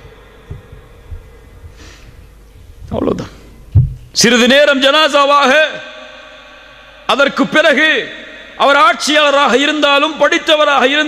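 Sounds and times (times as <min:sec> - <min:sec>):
soft low thumps: 0:00.0 - 0:04.2
faint steady hum: 0:00.0 - 0:11.0
man breathing in: 0:01.7 - 0:02.4
man speaking into a microphone: 0:02.9 - 0:03.5, 0:04.1 - 0:06.0, 0:07.1 - 0:11.0.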